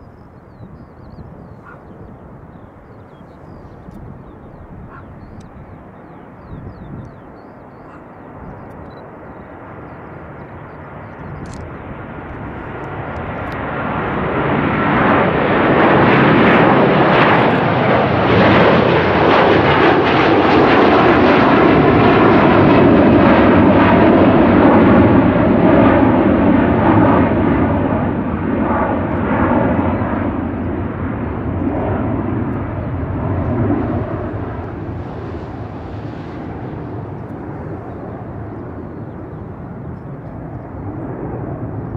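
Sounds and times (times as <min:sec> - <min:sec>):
jet airliner engines at takeoff: 0:00.0 - 0:41.9.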